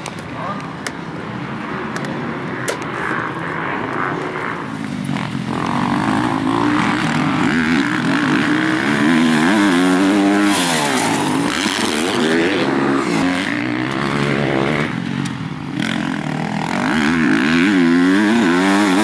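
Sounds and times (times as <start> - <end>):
motocross bike engines revving: 1.4 - 19.0.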